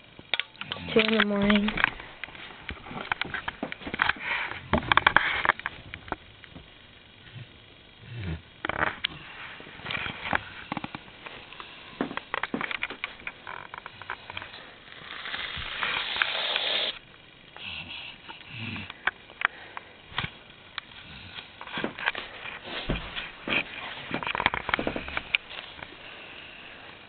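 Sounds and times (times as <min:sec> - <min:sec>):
aerosol can hissing: 0:15.1 - 0:17.0
soft rustling: 0:21.7 - 0:26.1.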